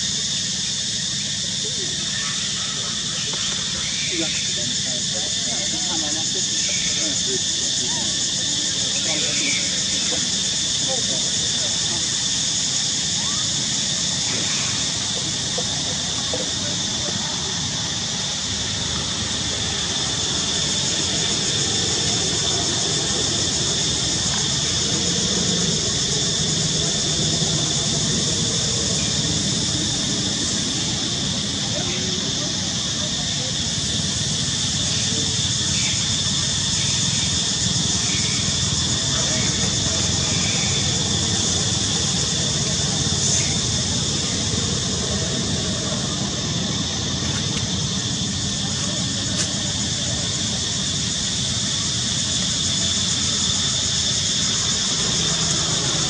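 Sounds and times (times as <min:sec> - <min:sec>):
high hiss: 0:00.0 - 0:56.0
high-pitched insect drone: 0:00.0 - 0:56.0.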